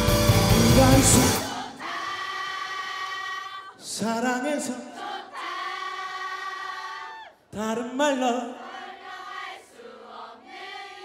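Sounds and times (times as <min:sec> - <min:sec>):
rock band playing: 0:00.0 - 0:01.6
crowd singing along: 0:00.2 - 0:07.2, 0:08.2 - 0:11.0.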